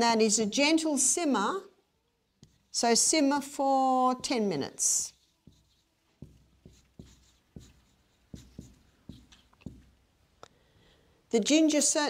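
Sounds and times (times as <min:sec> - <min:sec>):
marker writing on a whiteboard: 0:02.3 - 0:03.2, 0:04.0 - 0:10.2.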